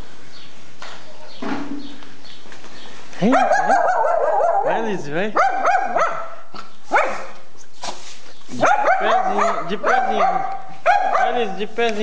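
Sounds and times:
dog barking sharply: 3.2 - 4.8, 5.4 - 7.4, 8.6 - 11.6
dog yipping and whining: 3.4 - 4.7.

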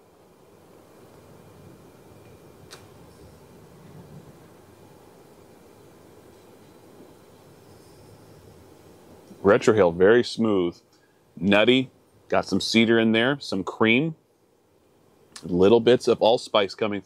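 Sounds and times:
breathy hiss of smoking: 0.6 - 9.5, 10.8 - 11.4
small click: 2.7 - 2.9, 15.3 - 15.5.

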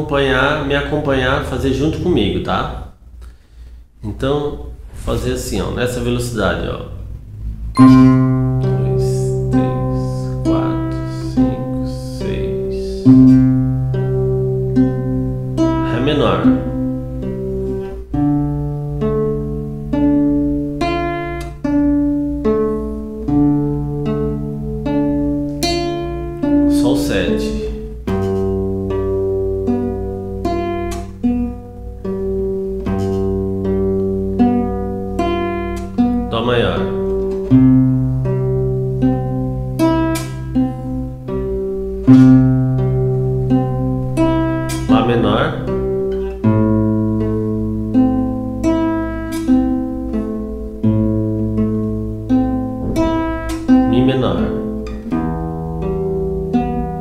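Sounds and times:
acoustic guitar fingerpicked slowly: 7.0 - 57.0.

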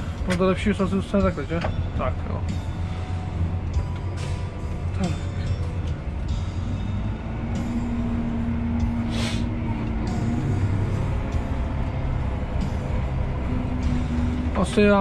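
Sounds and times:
tractor engine droning: 0.0 - 15.0
short hiss: 9.1 - 9.5.

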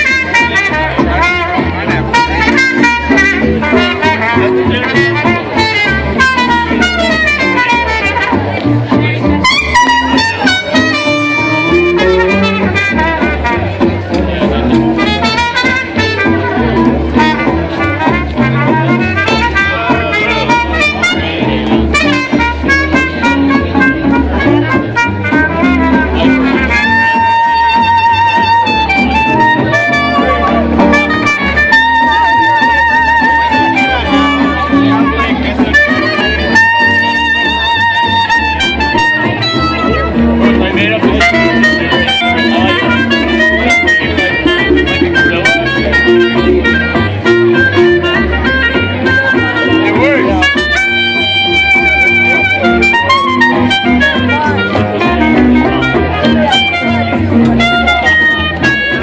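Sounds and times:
jazz band playing: 0.0 - 59.0.

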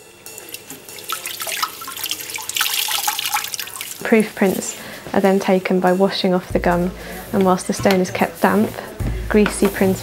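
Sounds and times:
water splashing in a bucket: 0.3 - 4.7.

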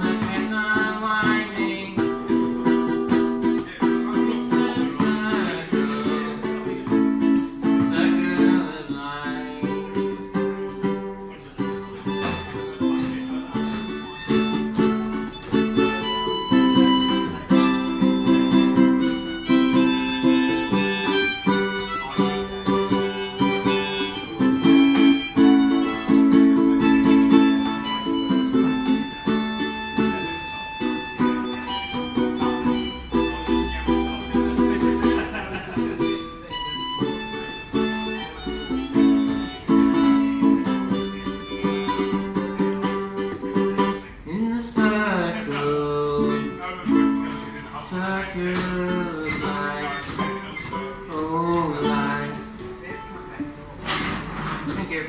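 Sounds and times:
harmonica playing: 0.0 - 44.0
strummed ukulele: 0.0 - 55.0.

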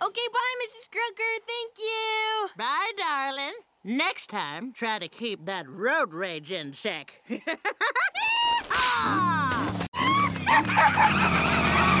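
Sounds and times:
cartoon squealing and skidding: 8.2 - 12.0.

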